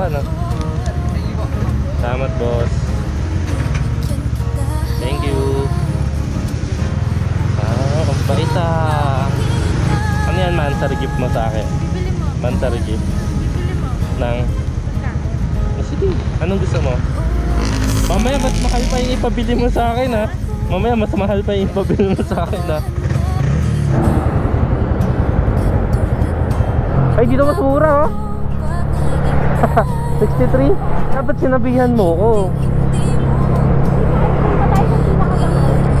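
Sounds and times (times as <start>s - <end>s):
motorcycle engine running: 0.0s - 36.0s
person's voice: 4.6s - 6.0s, 7.6s - 14.0s, 17.8s - 24.2s, 27.1s - 36.0s
broad rush of noise: 22.9s - 36.0s.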